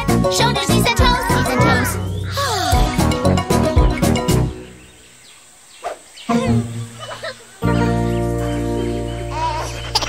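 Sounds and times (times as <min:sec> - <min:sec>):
animal-like vocal calls: 0:05.8 - 0:07.6.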